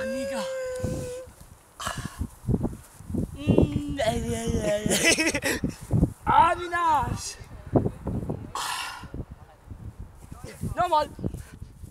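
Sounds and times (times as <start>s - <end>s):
rustles: 0.0s - 4.0s
young man laughing: 4.5s - 5.8s.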